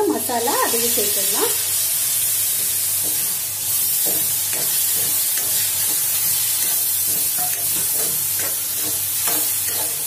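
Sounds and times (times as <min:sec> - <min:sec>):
vegetables sizzling in hot oil: 0:00.0 - 0:10.0
metal ladle scraping a pan: 0:04.0 - 0:10.0.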